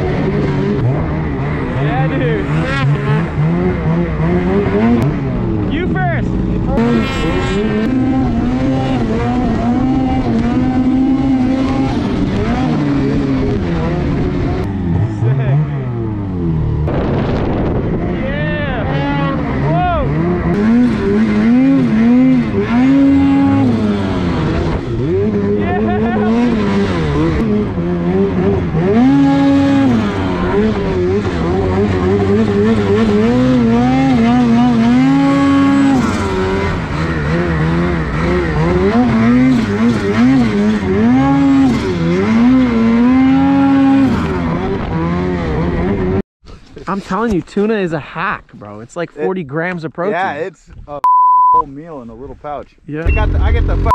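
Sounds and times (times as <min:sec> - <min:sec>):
snowmobile engine revving: 0:00.0 - 0:46.2, 0:53.0 - 0:53.9.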